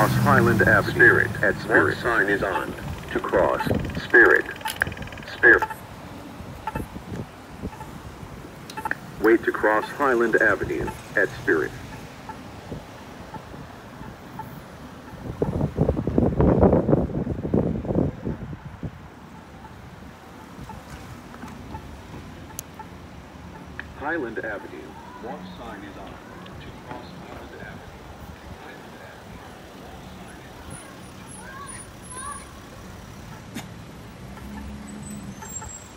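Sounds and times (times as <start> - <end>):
vehicle passing close by: 0.0 - 4.6, 28.8 - 35.9
wind rumbling on microphone: 0.5 - 9.2, 11.8 - 22.2.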